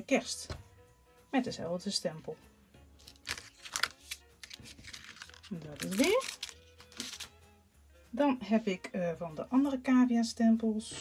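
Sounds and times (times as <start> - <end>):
card rustling and scraping: 3.0 - 7.3.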